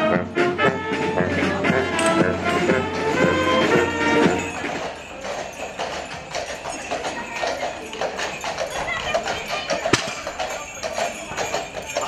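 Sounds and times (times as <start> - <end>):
music: 0.0 - 6.8
horse hooves clip-clopping on pavement: 0.0 - 12.0
voices: 1.1 - 12.0.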